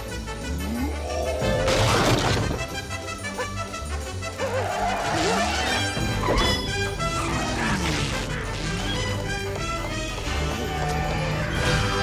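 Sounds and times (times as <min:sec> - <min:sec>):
fast orchestral chase music: 0:00.0 - 0:12.0.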